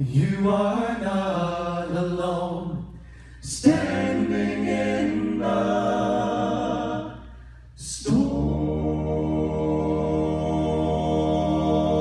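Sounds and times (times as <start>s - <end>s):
male vocal quartet singing in harmony: 0.0s - 12.0s.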